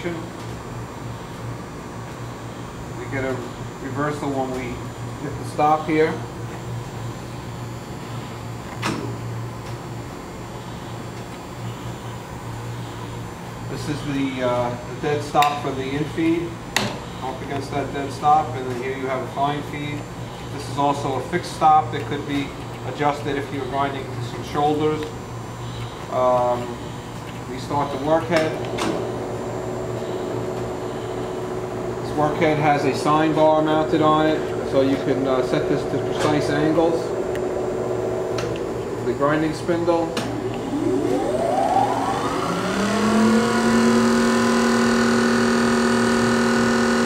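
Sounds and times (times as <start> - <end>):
grinder motor hum and whine: 0.0 - 47.0
grinder humming: 25.8 - 47.0.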